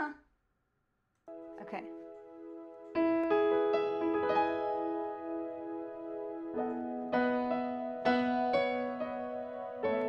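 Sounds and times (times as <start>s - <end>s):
electronic keyboard piano chords: 1.3s - 10.0s.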